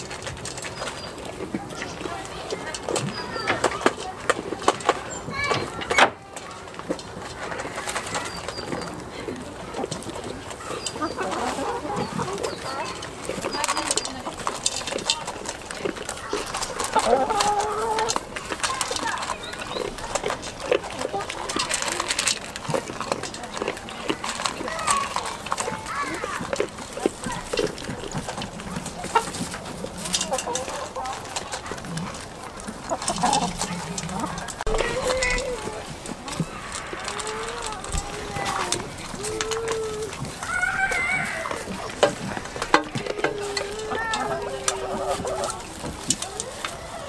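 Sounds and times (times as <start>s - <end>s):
animals feeding from metal bowls: 0.0s - 47.0s
hens clucking: 0.0s - 47.0s.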